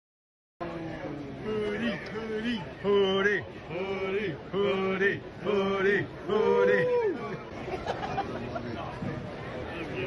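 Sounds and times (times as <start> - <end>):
voice chanting drawn-out syllables: 0.6 - 7.4.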